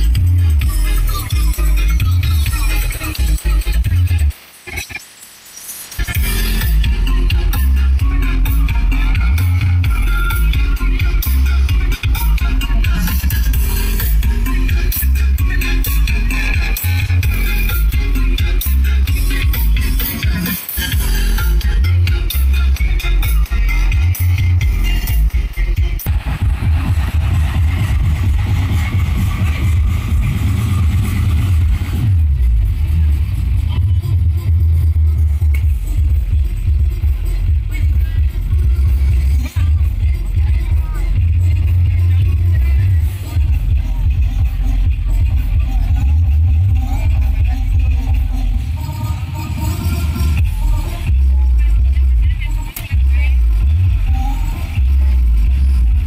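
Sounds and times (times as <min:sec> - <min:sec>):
electronic dance music heavy bass: 0:00.0 - 0:56.0.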